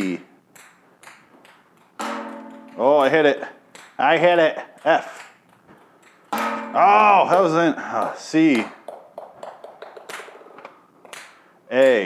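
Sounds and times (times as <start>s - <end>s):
ping-pong ball bouncing on tile: 0.5s - 4.0s, 4.6s - 11.4s.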